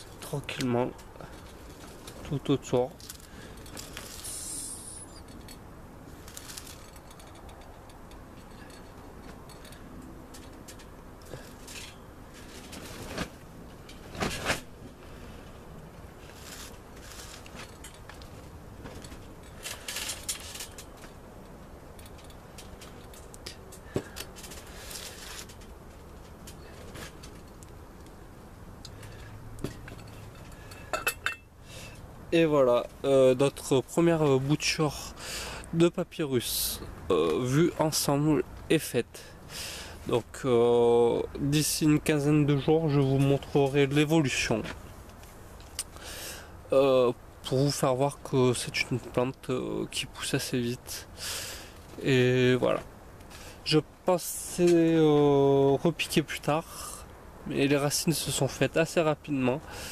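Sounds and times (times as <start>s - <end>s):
steady low hiss: 0.0s - 59.9s
glass jar clinking and knocking: 30.9s - 31.5s.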